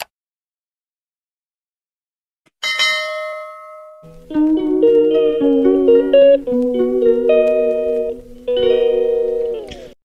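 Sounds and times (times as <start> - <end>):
bell strike ringing: 2.6 - 4.1.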